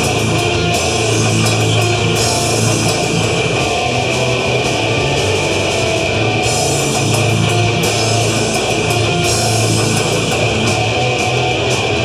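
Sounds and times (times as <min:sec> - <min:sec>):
live metal band playing: 0:00.0 - 0:12.0.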